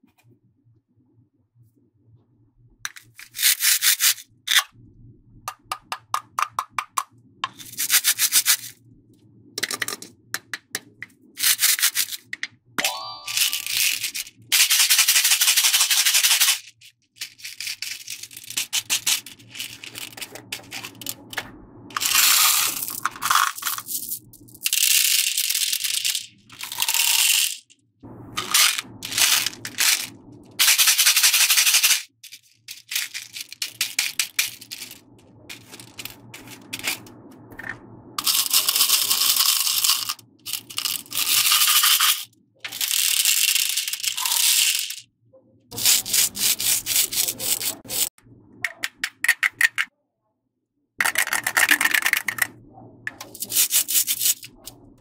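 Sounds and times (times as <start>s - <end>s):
plastic beads clattering: 2.9s - 4.7s, 7.4s - 8.8s, 11.4s - 27.8s, 28.4s - 37.1s, 38.2s - 45.0s, 45.8s - 48.1s, 51.0s - 52.5s, 53.1s - 54.7s.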